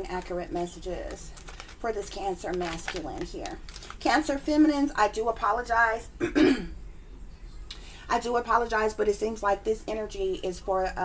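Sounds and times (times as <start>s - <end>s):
woman clearing her throat: 6.2s - 6.8s.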